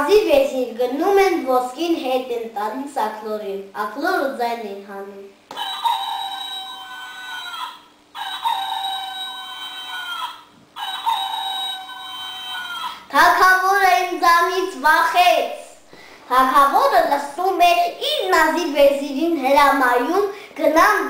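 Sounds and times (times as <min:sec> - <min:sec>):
child talking: 0:00.0 - 0:05.8, 0:12.4 - 0:21.0
electronic toy rooster crowing: 0:05.5 - 0:13.1.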